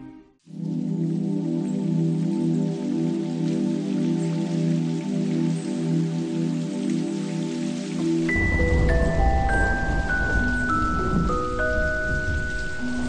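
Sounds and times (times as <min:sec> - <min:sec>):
rain pattering: 0:00.4 - 0:13.0.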